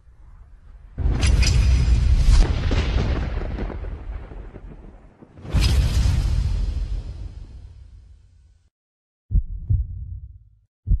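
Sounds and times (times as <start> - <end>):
deep heartbeat thumps: 9.3 - 11.0.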